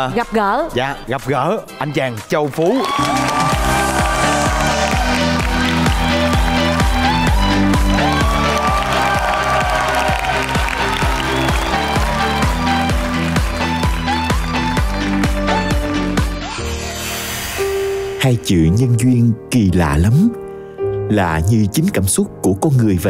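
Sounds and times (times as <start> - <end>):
upbeat music with bass: 0.0 - 17.0
audience applause: 2.6 - 15.9.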